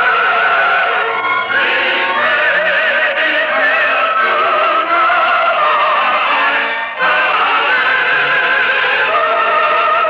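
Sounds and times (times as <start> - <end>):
instrumental accompaniment: 0.0 - 10.0
sung melody with long notes: 0.0 - 10.0.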